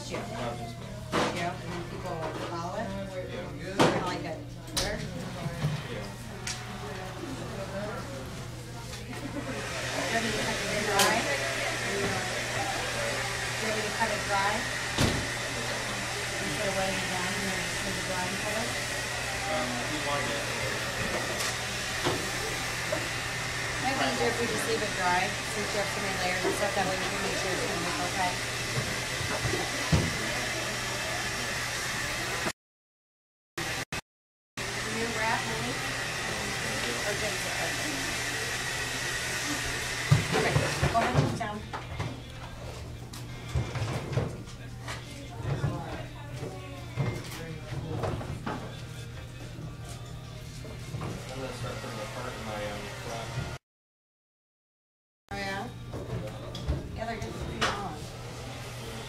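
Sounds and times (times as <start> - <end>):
people talking: 3.8 - 14.7, 23.8 - 28.4, 40.3 - 41.7
hair dryer running: 9.1 - 32.6, 33.6 - 33.9, 34.6 - 41.8, 50.6 - 53.6, 57.0 - 59.0
quiet background music: 41.0 - 53.2, 55.4 - 59.0.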